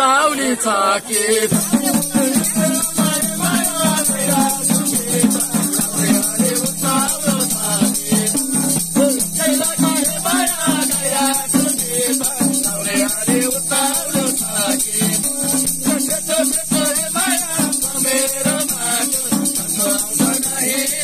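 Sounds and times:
man singing folk song: 0.0s - 21.0s
hand drum beat: 1.1s - 21.0s.

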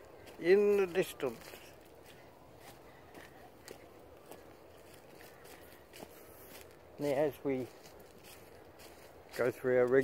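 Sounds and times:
soft footsteps: 0.0s - 10.0s.

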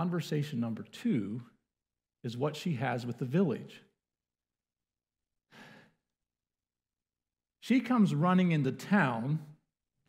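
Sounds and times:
short breath into microphone: 5.5s - 6.0s.

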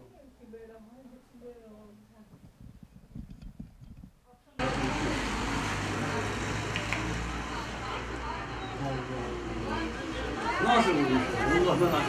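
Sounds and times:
people talking: 0.0s - 2.4s
steady low street hum: 4.1s - 12.0s.

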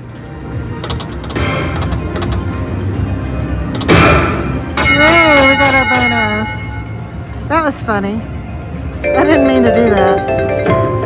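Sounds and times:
slot machine game music: 0.4s - 7.3s, 8.9s - 11.0s
loud hit: 3.9s - 4.8s.

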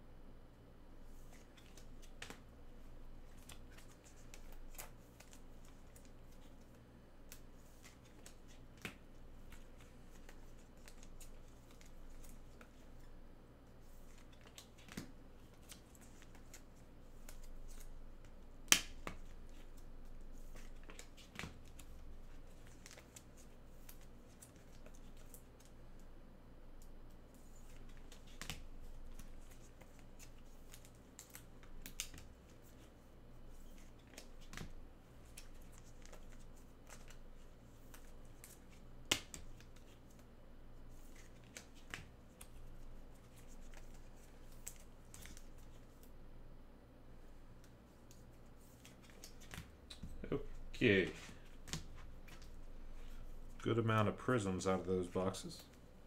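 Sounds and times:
cards rustling: 3.2s - 13.2s, 13.8s - 25.8s, 27.3s - 40.3s, 40.9s - 46.1s, 47.6s - 55.9s
cards clicking and tapping: 37.9s - 40.2s.

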